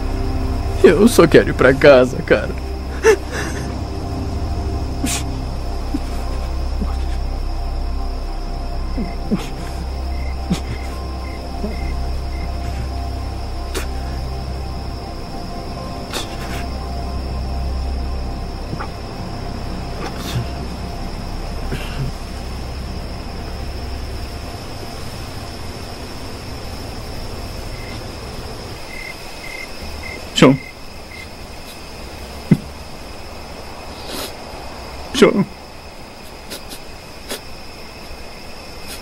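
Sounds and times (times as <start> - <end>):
low dark music drone: 0.0 - 38.5
insects chirring: 0.0 - 39.0.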